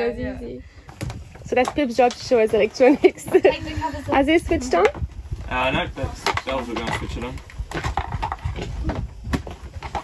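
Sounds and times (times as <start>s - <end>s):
plastic covers clicking and knocking: 6.2s - 10.0s.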